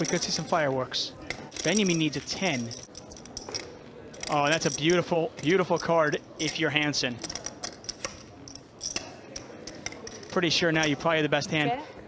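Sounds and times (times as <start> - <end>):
clay poker chips clicking: 1.2 - 11.0.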